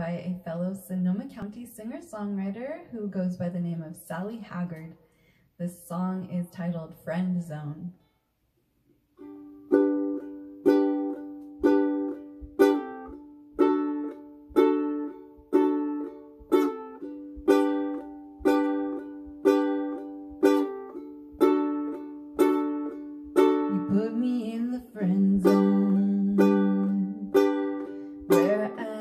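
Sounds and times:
ukulele strummed chords: 0:09.2 - 0:29.0.

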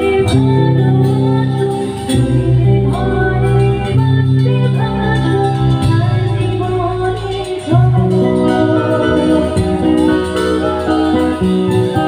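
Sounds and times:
live band playing instrumental: 0:00.0 - 0:12.0.

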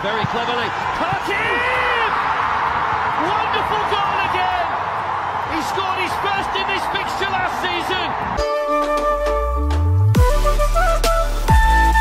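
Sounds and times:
stadium crowd noise: 0:00.0 - 0:08.8
music with held notes and bass: 0:08.4 - 0:12.0.

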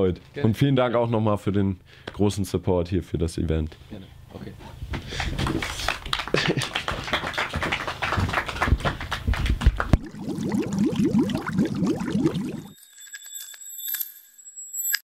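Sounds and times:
bright ringing chime: 0:12.4 - 0:15.0.

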